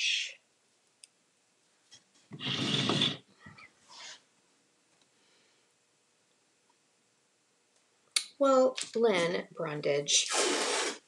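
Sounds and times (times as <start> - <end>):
person snorting: 2.4 - 3.3, 10.3 - 11.0
faint breaths: 5.1 - 5.8.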